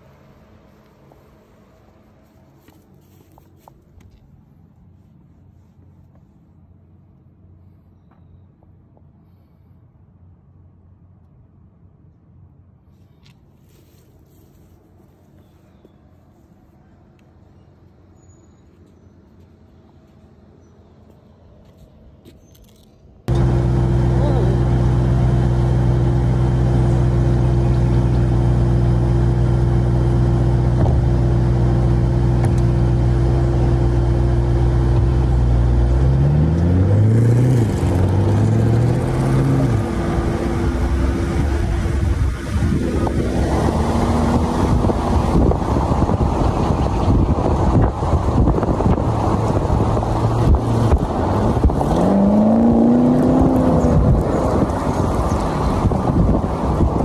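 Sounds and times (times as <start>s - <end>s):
wind and road noise: 0.0s - 57.0s
car engine idling and revving: 19.0s - 57.0s.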